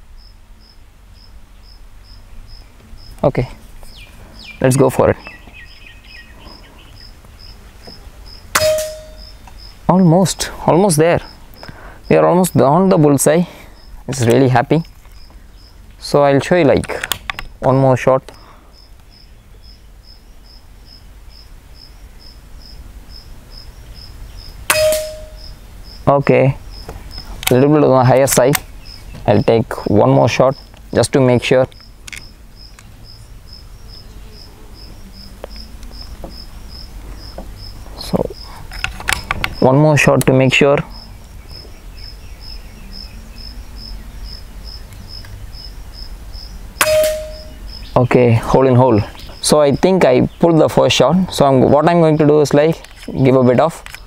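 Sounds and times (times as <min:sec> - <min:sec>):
insect chirping: 0:00.0 - 0:16.4, 0:17.2 - 0:48.3
air rifle shot: 0:08.5 - 0:09.3, 0:24.7 - 0:25.5, 0:46.8 - 0:47.6
short ringing tone: 0:08.6 - 0:09.3, 0:24.8 - 0:25.4, 0:46.8 - 0:47.6.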